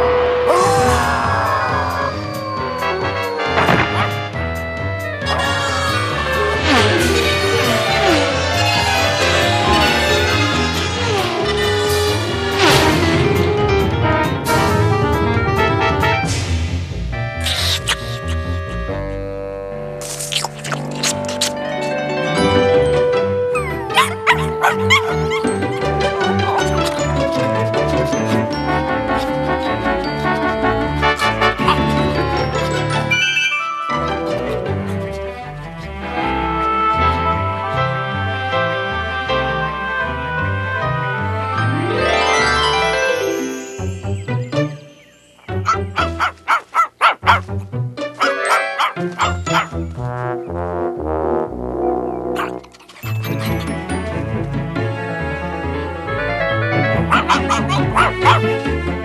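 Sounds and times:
cartoon music: 0.5s - 8.3s, 20.2s - 34.9s, 41.8s - 49.8s, 51.8s - 54.0s, 56.8s - 58.6s
cartoon dog whining: 0.6s - 3.1s, 5.2s - 6.4s, 23.5s - 27.6s, 45.6s - 47.4s, 57.1s - 58.5s
cartoon dog yips: 5.2s - 6.2s, 17.4s - 18.5s, 23.5s - 27.0s, 45.6s - 47.4s, 48.2s - 49.8s, 52.3s - 53.6s, 57.1s - 58.5s.

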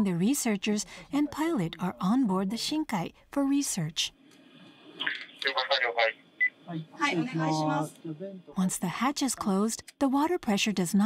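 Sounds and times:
voices over radio: 5.0s - 8.5s.

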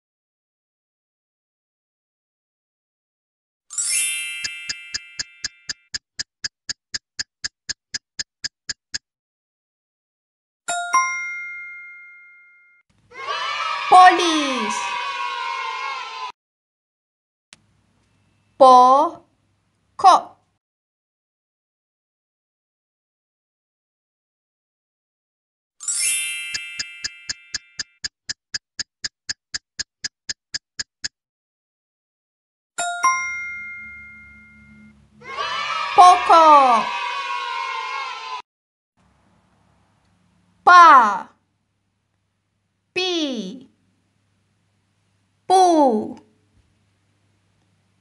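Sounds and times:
chime sound effect: 3.7s - 5.8s, 25.8s - 27.8s, 32.8s - 35.1s
cheering sound effect: 13.1s - 16.3s, 35.2s - 38.4s
two-note chime: 32.8s - 35.0s.

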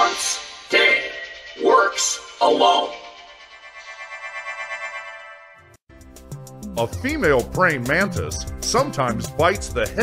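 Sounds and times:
electronic chord with light pulsing: 0.0s - 6.8s.

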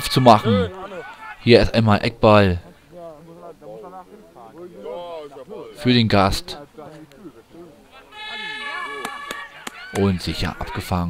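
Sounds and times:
faint shouts of players: 0.0s - 1.6s, 2.8s - 11.0s.

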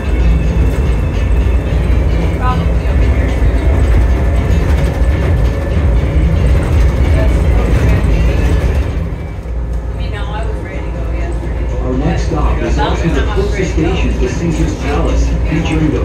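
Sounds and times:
monorail train rumble: 0.0s - 16.0s.

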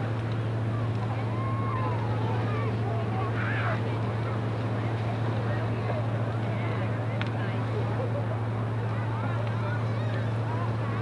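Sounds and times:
bonfire burning with rushing noise: 0.0s - 11.0s
faint crowd voices: 0.0s - 11.0s
steady low hum: 0.0s - 11.0s.

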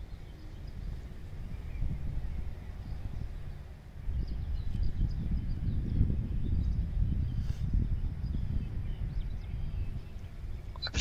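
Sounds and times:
wind buffeting microphone: 0.0s - 11.0s
faint bird chirps: 8.3s - 11.0s.

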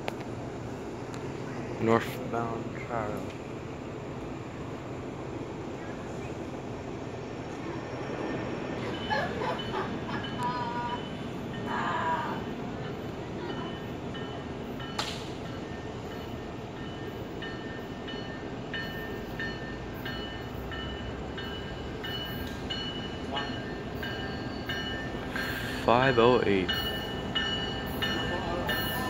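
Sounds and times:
train approaching rumble: 0.0s - 29.0s.

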